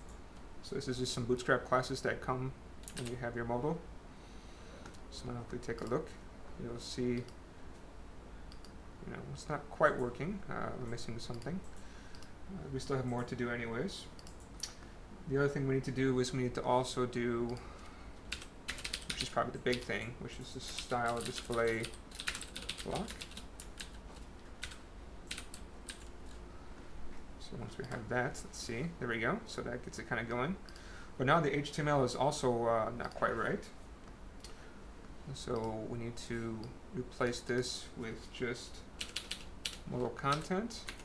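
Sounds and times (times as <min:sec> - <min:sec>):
computer keyboard typing: 0:02.8 - 0:03.2, 0:18.3 - 0:20.0, 0:20.7 - 0:26.1, 0:39.0 - 0:41.0
computer mouse clicks: 0:08.5 - 0:08.8, 0:10.9 - 0:12.3, 0:14.2 - 0:14.8.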